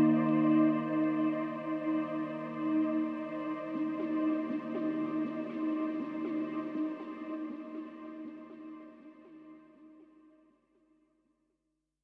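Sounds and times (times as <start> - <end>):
ambient sustained chords: 0.0 - 8.8.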